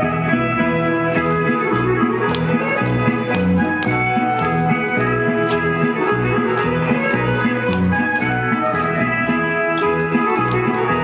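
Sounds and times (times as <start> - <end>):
folk-dance tune: 0.0 - 11.0
sharp claps: 1.2 - 11.0.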